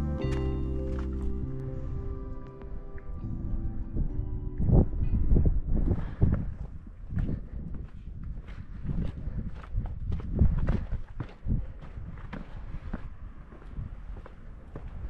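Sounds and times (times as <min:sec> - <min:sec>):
footsteps crunching on gritty trail: 0:07.1 - 0:15.0.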